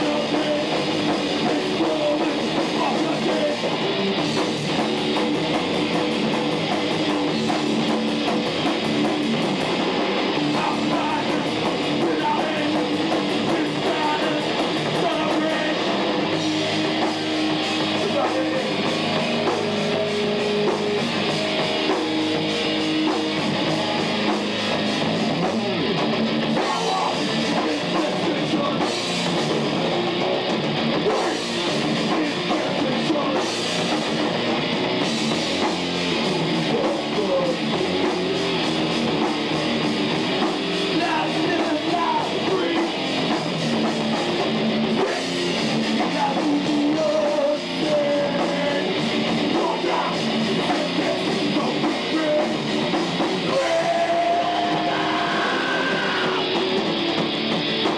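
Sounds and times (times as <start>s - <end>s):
distorted electric guitars: 0.0s - 57.9s
drum kit: 0.0s - 57.9s.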